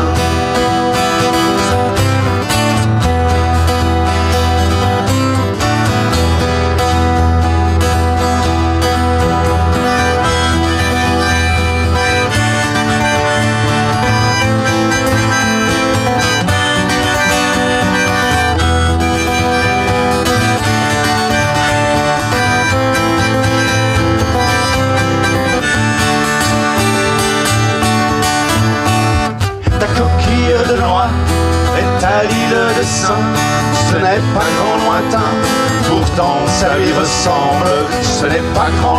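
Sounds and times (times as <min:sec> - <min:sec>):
bass line: 0:00.0 - 0:38.9
held melody line: 0:00.0 - 0:38.9
strummed acoustic guitars: 0:00.0 - 0:38.9.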